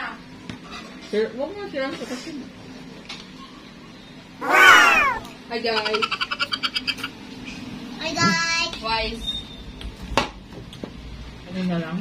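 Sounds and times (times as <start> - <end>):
high-pitched pulsing vocal sound: 4.4 - 5.3.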